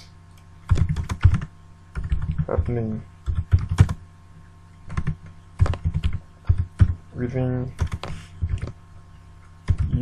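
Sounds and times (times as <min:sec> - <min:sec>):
typing on computer keyboard: 0:00.7 - 0:04.0, 0:04.9 - 0:07.0, 0:07.8 - 0:08.7, 0:09.7 - 0:10.0.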